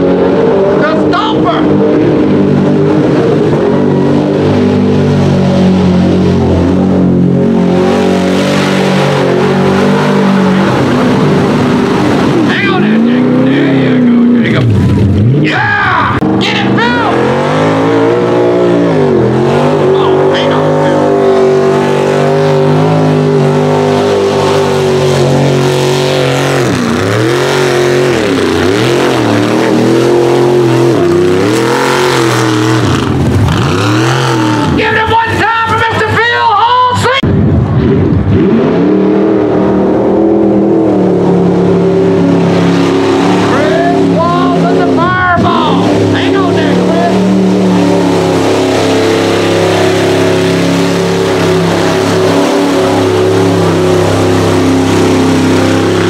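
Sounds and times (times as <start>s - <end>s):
truck engines revving: 0.0s - 56.0s.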